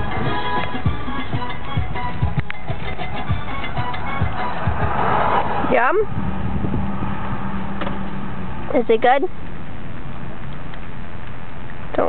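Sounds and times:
car engine hum: 0.0 - 12.0
road rumble: 0.0 - 12.0.

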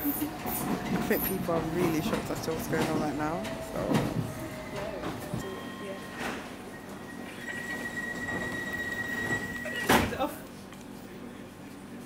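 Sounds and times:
rumble of moving carriage: 0.0 - 5.4
train wheels squealing: 6.7 - 9.9.

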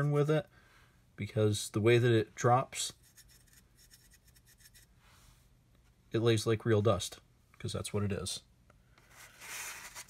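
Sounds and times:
soft brush scratching on plastic: 2.9 - 5.4, 9.0 - 10.0.

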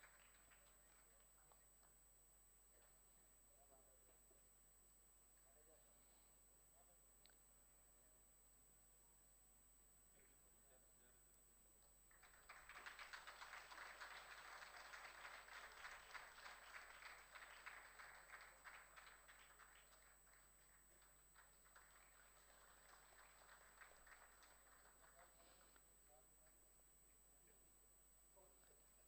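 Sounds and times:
faint audience applause: 0.0 - 1.9, 12.1 - 26.5.

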